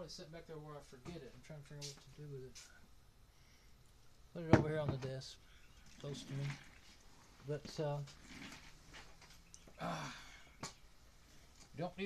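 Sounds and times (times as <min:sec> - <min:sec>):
man's hesitation sounds: 0:09.4 - 0:10.8.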